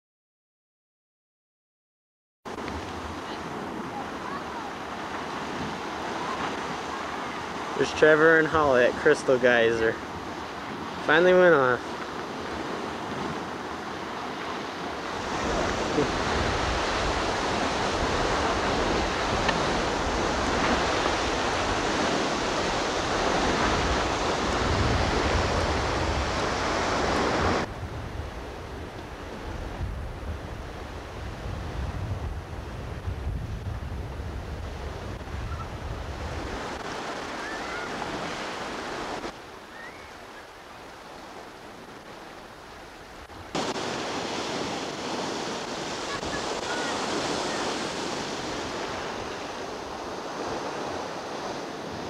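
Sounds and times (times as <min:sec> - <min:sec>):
geyser water rushing: 0:02.8 - 0:27.7, 0:36.2 - 0:51.9.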